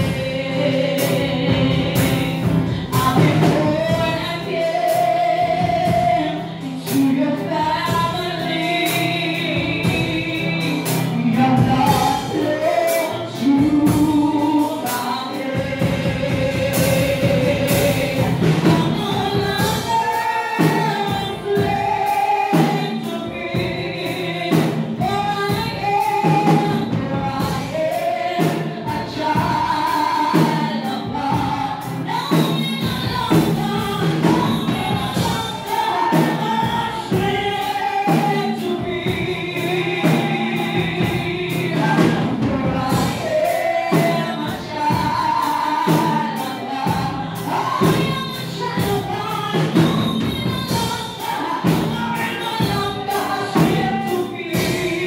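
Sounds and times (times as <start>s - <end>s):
voices singing along: 0.0s - 55.0s
woman singing gospel: 0.0s - 55.0s.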